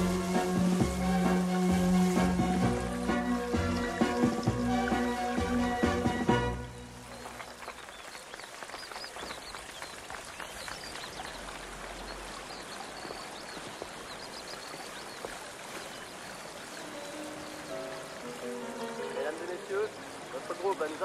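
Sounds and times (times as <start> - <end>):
fountain water splashing: 0.0 - 21.0.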